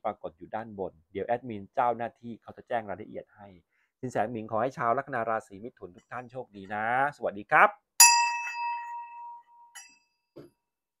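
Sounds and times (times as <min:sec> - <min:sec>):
small brass bell ringing: 0:08.0 - 0:10.2.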